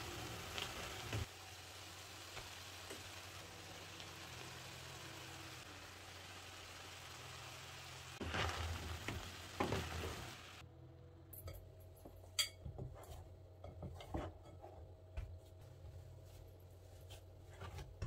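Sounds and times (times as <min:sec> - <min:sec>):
meat sizzling in a frying pan: 0:00.0 - 0:10.6
hands kneading dough: 0:12.8 - 0:18.0.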